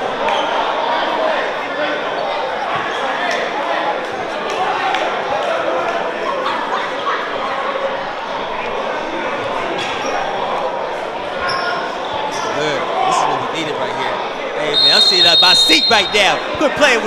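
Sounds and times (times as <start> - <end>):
crowd chattering in echoing hall: 0.0 - 17.0.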